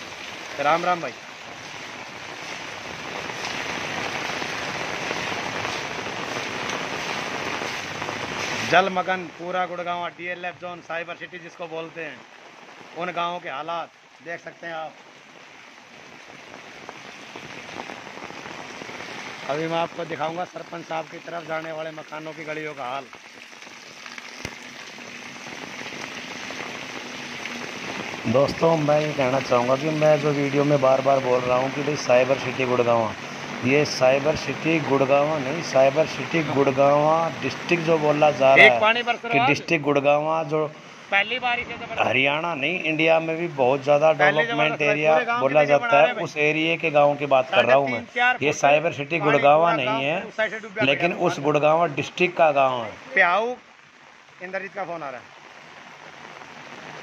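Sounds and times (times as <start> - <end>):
heavy rain falling on pavement: 0.0 - 57.0.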